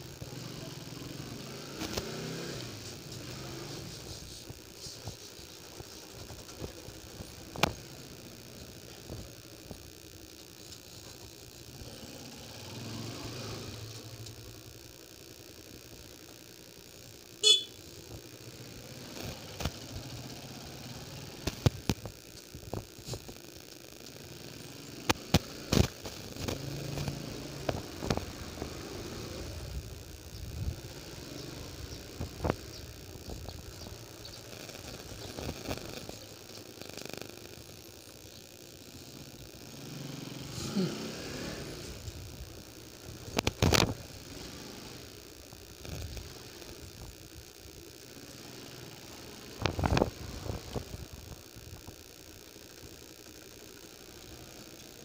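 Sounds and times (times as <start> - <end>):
motorcycle engine running: 0.0 - 55.0.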